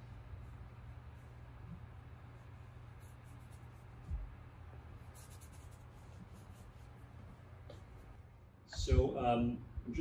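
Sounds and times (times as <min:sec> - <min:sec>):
paintbrush strokes on board: 0:00.0 - 0:08.2.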